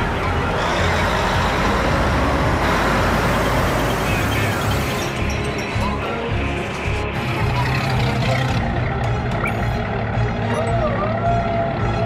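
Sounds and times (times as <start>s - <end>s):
tracked vehicle engine and tracks: 0.0s - 12.0s.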